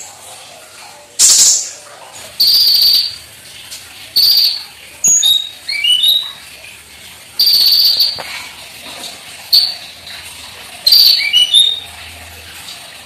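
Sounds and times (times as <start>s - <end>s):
sharp bird chirping: 2.4s - 3.2s, 4.2s - 6.3s, 7.4s - 8.2s, 10.9s - 11.8s
harsh buzzy bird trills: 2.4s - 3.3s, 4.2s - 6.4s, 7.4s - 8.2s, 10.8s - 11.9s.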